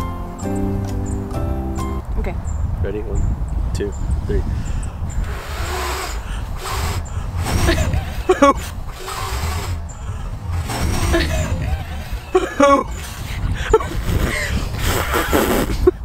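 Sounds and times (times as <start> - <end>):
low wind rumble: 0.0 - 16.0
breathy puffs of air: 4.2 - 16.0
voices and laughter: 7.2 - 9.0, 9.9 - 16.0.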